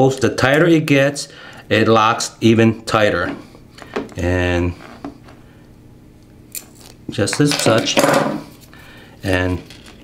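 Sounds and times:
quiet handling: 0:02.4 - 0:05.5.

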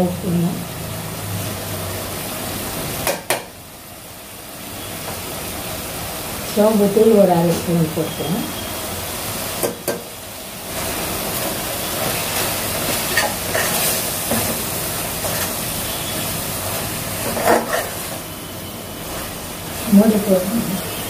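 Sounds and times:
masala sizzling in a pot: 0:00.0 - 0:21.0
metal spatula scraping a pot: 0:13.1 - 0:14.0, 0:17.2 - 0:18.0.

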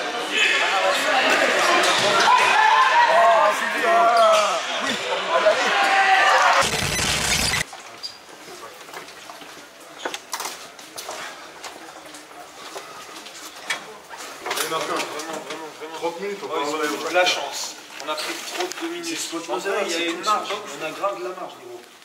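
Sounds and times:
burst of noise: 0:06.5 - 0:07.7.

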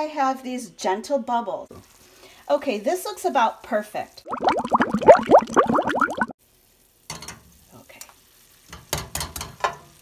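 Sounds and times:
cartoon bubbling pops: 0:04.2 - 0:06.4.

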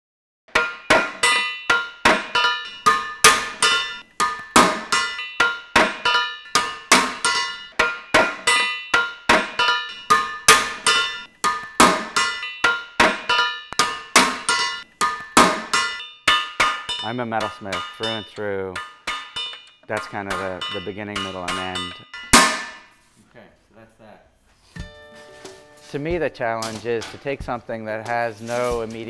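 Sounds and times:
metal clanging in rhythm: 0:00.5 - 0:23.1, 0:24.7 - 0:29.0.

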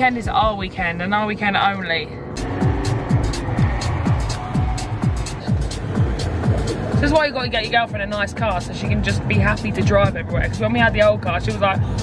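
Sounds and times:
car road noise: 0:00.0 - 0:12.0
electronic house music: 0:02.2 - 0:12.0.

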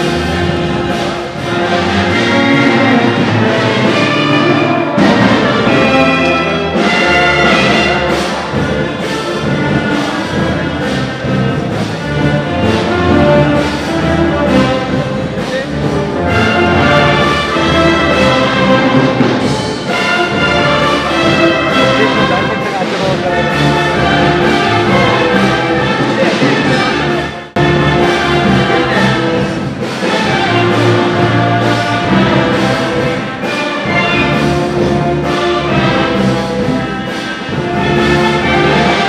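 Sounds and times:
orchestral band with brass: 0:00.0 - 0:39.0.

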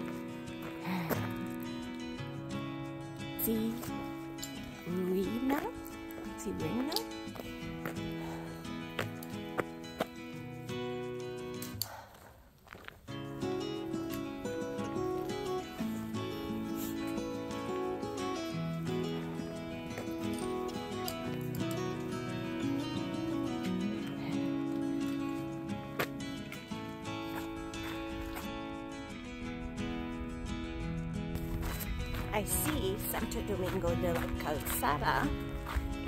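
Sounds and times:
background music of held notes: 0:13.2 - 0:36.0.

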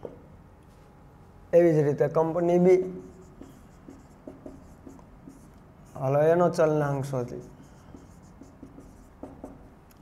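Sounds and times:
marker writing on whiteboard: 0:02.8 - 0:06.6, 0:07.2 - 0:09.8.

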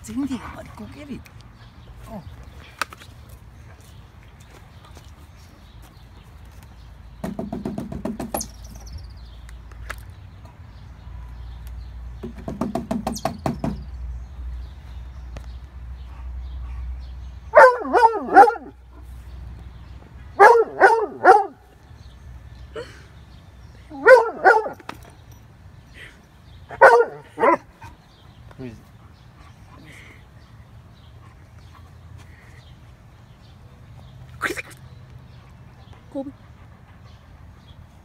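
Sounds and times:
knocking on a downspout: 0:07.2 - 0:08.4, 0:12.2 - 0:13.9
dog barking: 0:17.5 - 0:18.8, 0:20.4 - 0:21.6, 0:24.0 - 0:24.8, 0:26.8 - 0:27.6.

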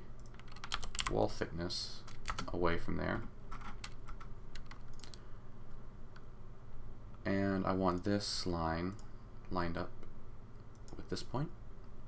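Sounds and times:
low steady hum: 0:00.0 - 0:12.0
keyboard keys clicking: 0:00.2 - 0:01.1, 0:03.5 - 0:05.2.

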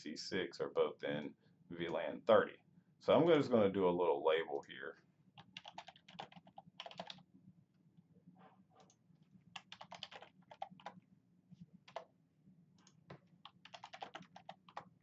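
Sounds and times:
computer keyboard typing: 0:05.4 - 0:07.2, 0:09.5 - 0:11.0, 0:11.8 - 0:12.1, 0:12.8 - 0:15.0.

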